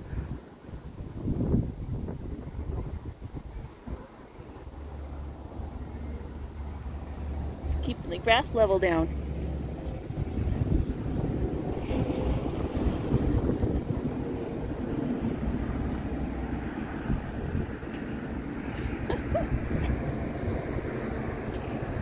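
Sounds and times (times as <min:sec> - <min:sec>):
wind buffeting the microphone: 0:00.0 - 0:22.0.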